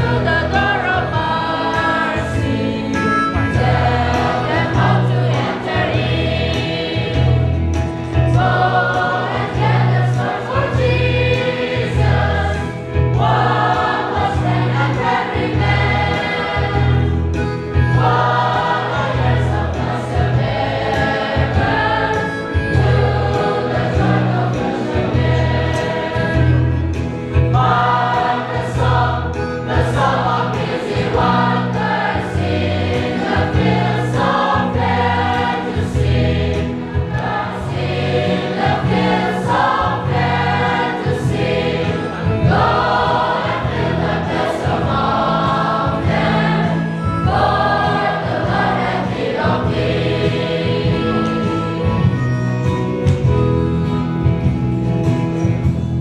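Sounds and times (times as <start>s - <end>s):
congregation singing a hymn: 0.0s - 52.7s.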